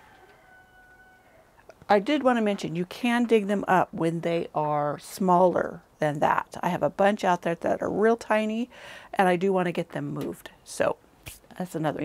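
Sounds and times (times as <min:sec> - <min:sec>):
woman speaking: 0:01.7 - 0:12.0.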